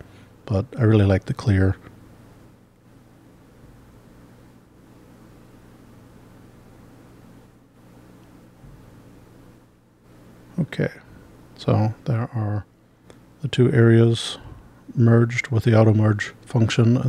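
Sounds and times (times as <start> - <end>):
faint low hum with hiss: 0.0 - 17.0.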